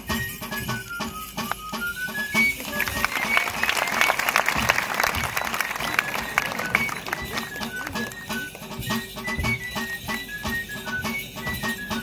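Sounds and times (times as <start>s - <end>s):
drum beating time: 0.0s - 12.0s
three-hole flute dance tune: 0.0s - 12.0s
crowd noise: 1.5s - 12.0s.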